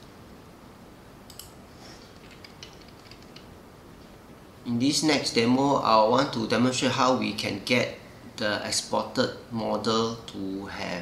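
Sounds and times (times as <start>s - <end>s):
mouse and keyboard clicks: 2.2s - 3.5s.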